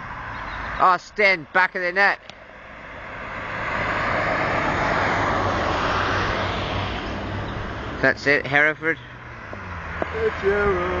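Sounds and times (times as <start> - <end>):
vehicle passing: 2.3 - 11.0.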